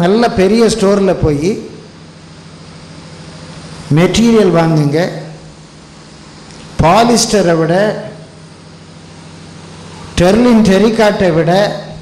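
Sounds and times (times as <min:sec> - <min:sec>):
low even hum: 0:00.0 - 0:12.0.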